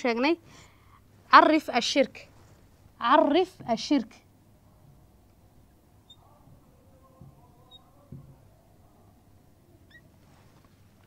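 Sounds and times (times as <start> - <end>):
marker squeaking on whiteboard: 6.0 - 8.2, 9.8 - 10.2
marker tapping on whiteboard: 8.1 - 8.5.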